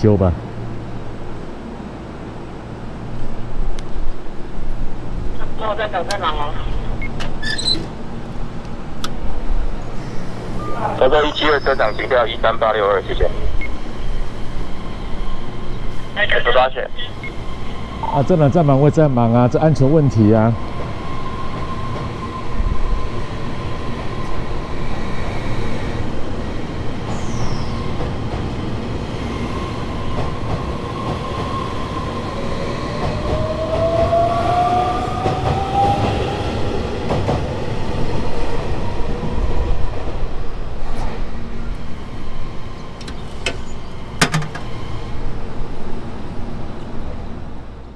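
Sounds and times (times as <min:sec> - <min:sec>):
electric train rumble and motor whine: 0:00.0 - 0:47.9.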